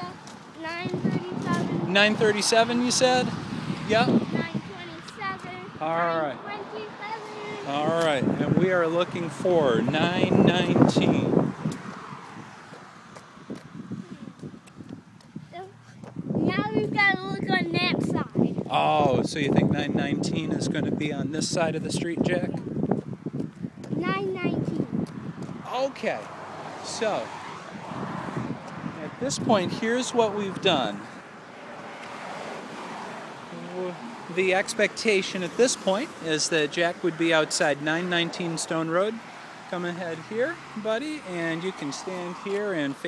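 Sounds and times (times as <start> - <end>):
wind on microphone: 0.0 - 36.1
distant road traffic: 0.0 - 43.0
vehicle tyre noise passing: 0.0 - 43.0
footsteps on concrete: 0.2 - 1.8, 11.5 - 17.0, 22.6 - 24.0, 24.6 - 25.7.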